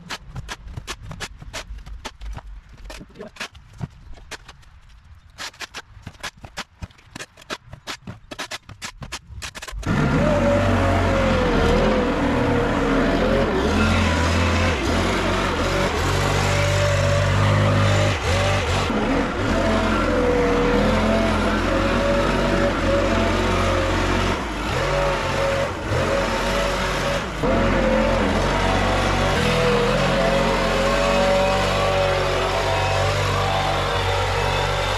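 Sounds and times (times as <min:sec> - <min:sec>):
leaf blower engine running: 0:09.8 - 0:34.9.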